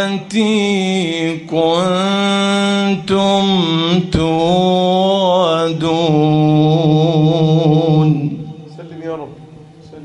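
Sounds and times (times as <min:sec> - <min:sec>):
man reciting melodically: 0:00.0 - 0:10.0.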